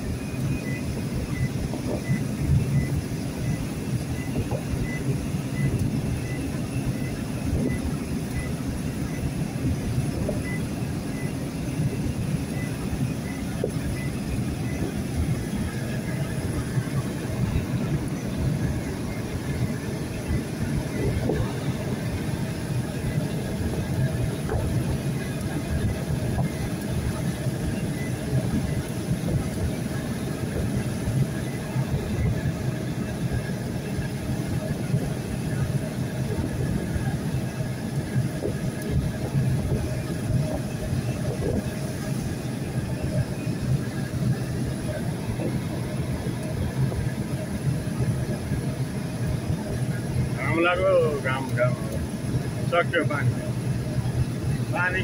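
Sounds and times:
in-cab road noise on wet highway: 0.0 - 55.0.

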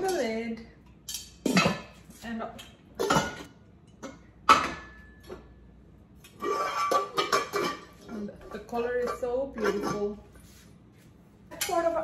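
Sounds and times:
pots and lid clinking: 1.1 - 2.0, 6.3 - 10.2.

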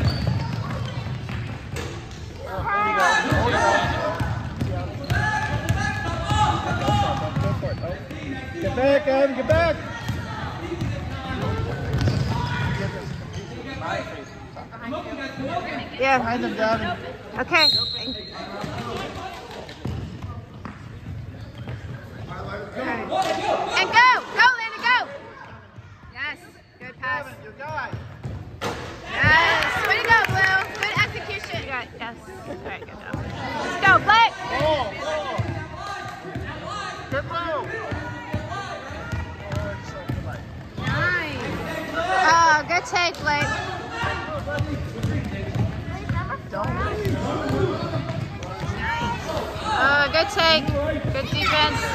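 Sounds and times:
voices in a hall: 0.0 - 51.9
basketball bouncing on wooden floor: 44.4 - 49.1.

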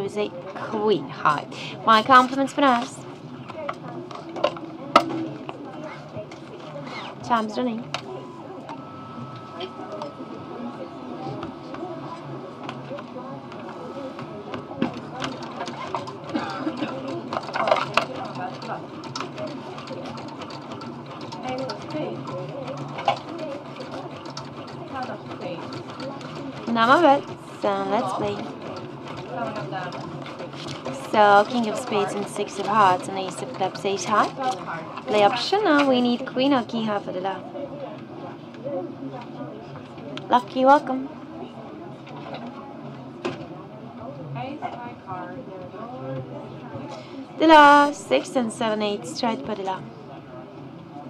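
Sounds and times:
murmur of voices: 0.0 - 51.0.

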